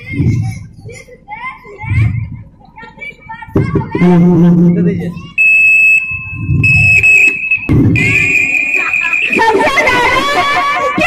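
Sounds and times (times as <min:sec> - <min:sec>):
microphone feedback howl: 0:04.2 - 0:10.7.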